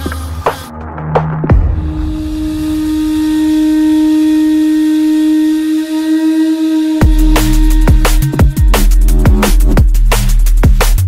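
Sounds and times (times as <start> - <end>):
long held synth note: 1.7 - 9.3
drums crashing: 7.0 - 11.0.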